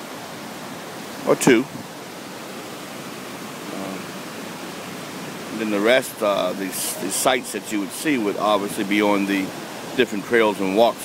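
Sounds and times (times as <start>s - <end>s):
whitewater rapids roaring: 0.0s - 11.0s.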